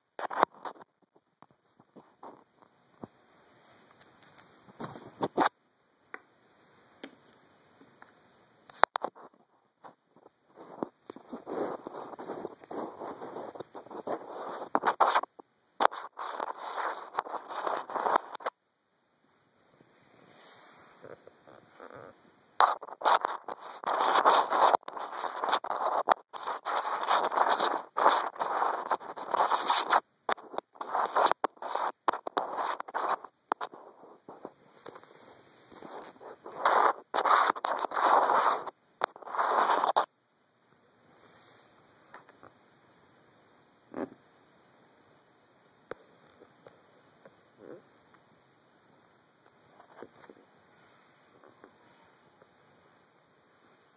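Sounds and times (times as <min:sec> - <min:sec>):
hands rubbing microphone: 0:00.2 - 0:05.5, 0:08.7 - 0:18.6, 0:20.0 - 0:40.1.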